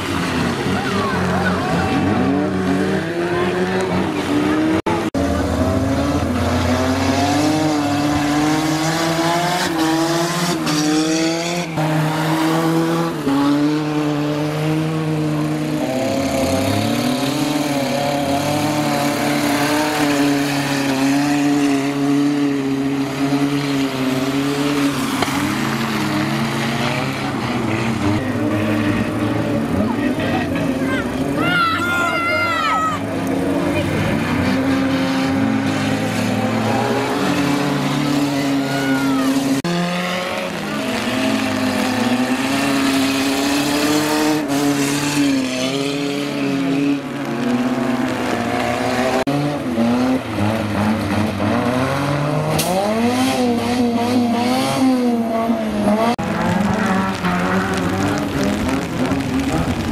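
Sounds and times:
race car engines revving: 0:00.0 - 0:59.9.

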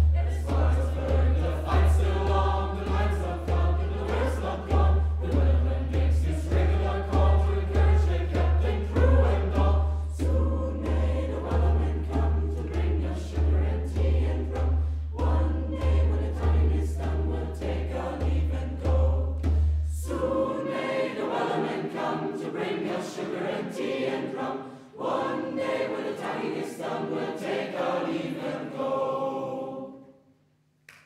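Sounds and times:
steady low beat: 0:00.0 - 0:20.2
youth choir singing: 0:00.0 - 0:30.1.

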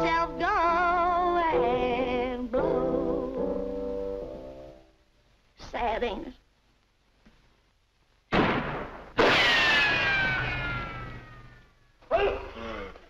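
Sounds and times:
cartoon explosion blasts: 0:08.3 - 0:11.4.

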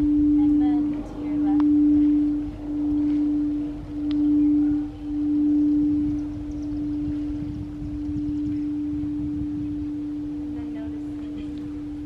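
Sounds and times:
singing bowl low tone: 0:00.0 - 0:12.0.

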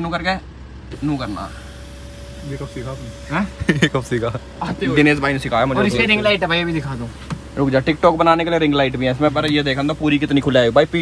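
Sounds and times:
car engine idling: 0:00.0 - 0:11.0
electric sunroof motor whine: 0:00.8 - 0:11.0.

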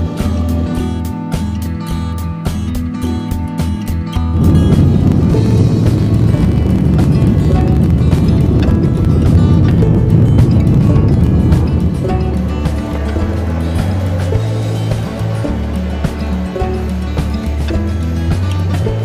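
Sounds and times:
background music with steady beat: 0:00.0 - 0:19.0
jet engines rumbling at takeoff: 0:04.3 - 0:19.0.

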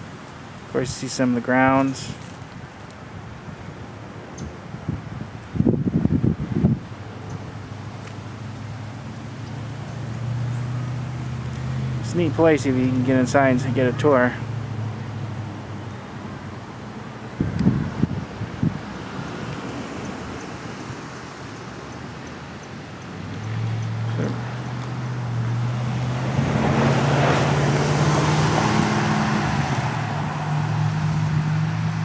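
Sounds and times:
road noise: 0:00.0 - 0:32.0
vehicle engine hum: 0:00.0 - 0:32.0.

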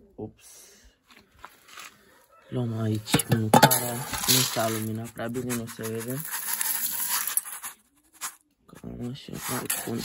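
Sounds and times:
dry grain rattling in a bowl: 0:03.1 - 0:08.4.

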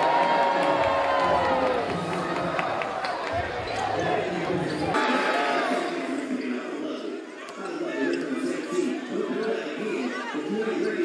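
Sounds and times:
voices and crowd noise: 0:00.0 - 0:11.0.

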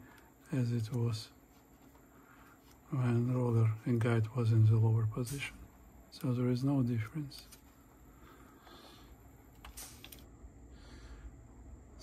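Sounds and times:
soft rustle: 0:00.8 - 0:04.0.

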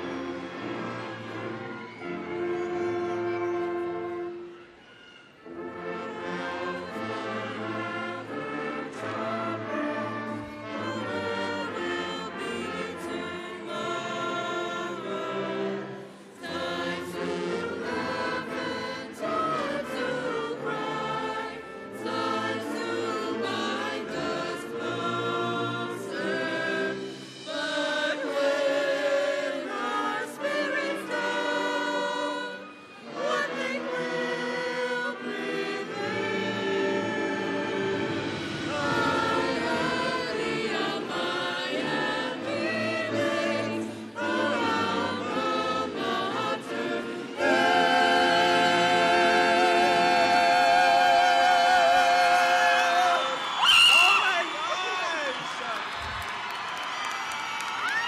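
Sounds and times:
chorus singing: 0:00.0 - 0:04.6, 0:05.4 - 0:54.5
brass band playing: 0:00.0 - 0:53.2.

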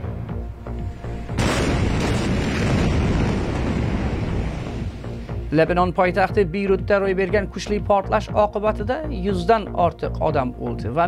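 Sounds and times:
explosion roar: 0:01.3 - 0:05.3.

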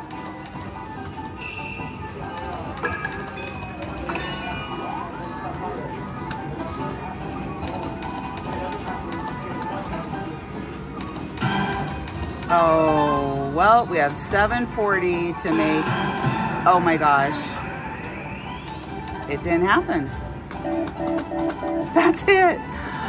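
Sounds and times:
casino background noise: 0:00.0 - 0:23.0
slot machine game music and chimes: 0:01.3 - 0:05.3, 0:15.4 - 0:22.3.

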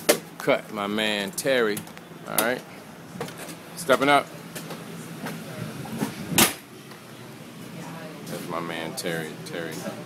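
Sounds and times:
steady low hum: 0:00.0 - 0:10.0
sharp thump: 0:06.4 - 0:06.6.

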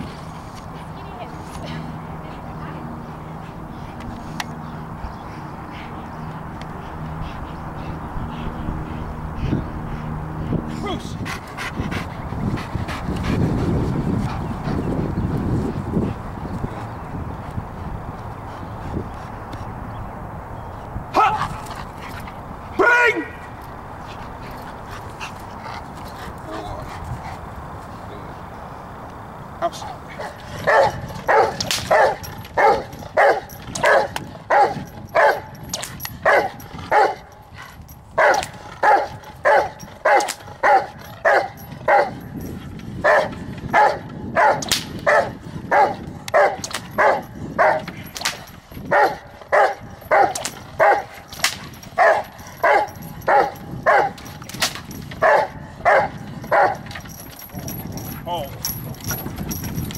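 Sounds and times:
dog barking: 0:30.2 - 0:35.5, 0:36.2 - 0:37.3, 0:38.2 - 0:42.2, 0:43.0 - 0:47.9, 0:48.9 - 0:51.2, 0:52.0 - 0:54.2, 0:55.2 - 0:56.9.

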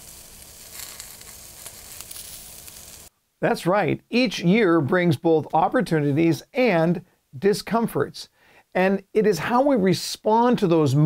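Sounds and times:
faint crackles: 0:00.0 - 0:03.1
steady sizzling hiss: 0:00.0 - 0:11.0.

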